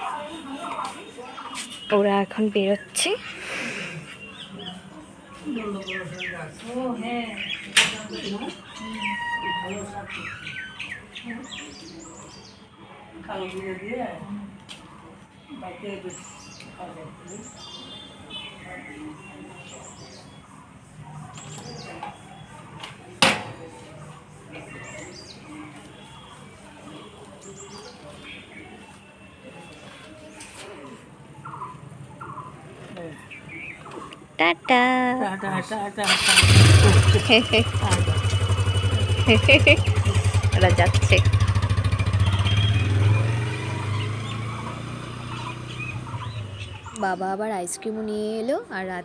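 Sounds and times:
faint voices: 0.0 - 49.0
birds chirping and calling: 0.6 - 12.6, 31.4 - 47.6.

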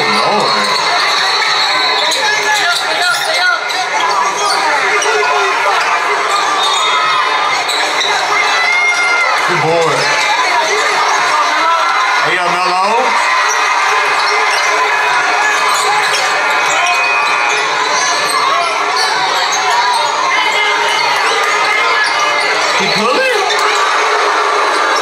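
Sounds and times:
crowd din: 0.0 - 25.0.

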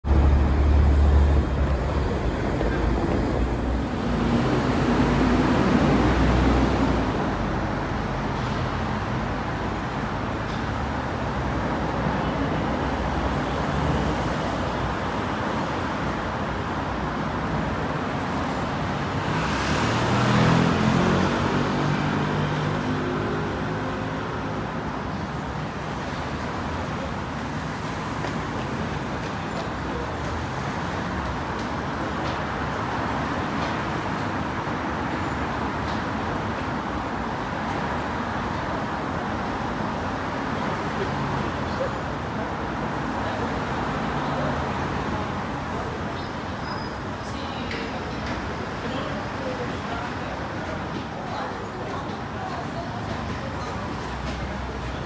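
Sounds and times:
cars and buses passing: 0.0 - 55.0
city road traffic: 0.0 - 55.0.

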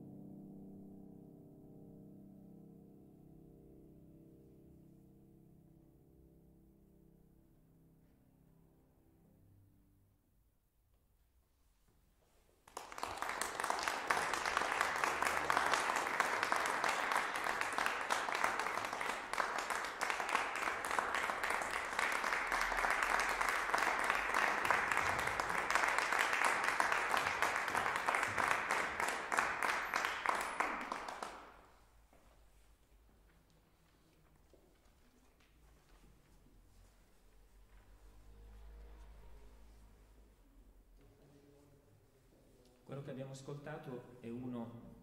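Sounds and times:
audience applauding: 12.6 - 31.8.

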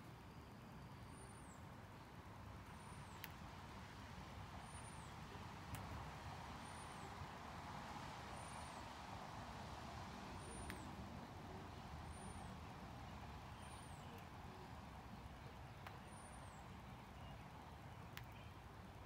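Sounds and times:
low hum of distant traffic: 0.0 - 19.0
soft clicks: 3.0 - 3.5, 5.7 - 6.0, 10.4 - 11.0, 15.7 - 18.7.

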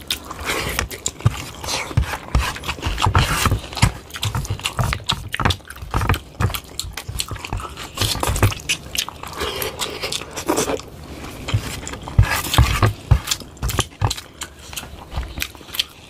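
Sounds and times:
wet chewing: 0.0 - 16.0.

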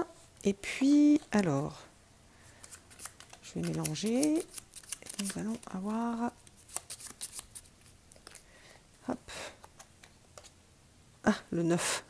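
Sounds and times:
cards being shuffled: 2.5 - 8.5, 9.6 - 10.6.

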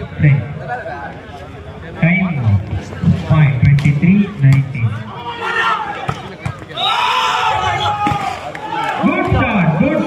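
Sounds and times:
crowd shouting and cheering: 4.7 - 10.0.

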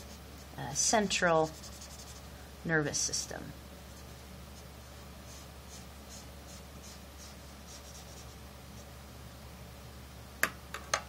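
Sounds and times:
marker scratching on paper: 0.8 - 2.3, 3.9 - 8.9.

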